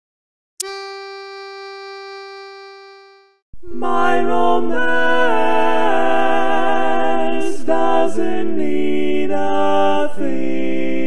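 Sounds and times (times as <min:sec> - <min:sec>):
sustained note: 0:00.6 - 0:03.4.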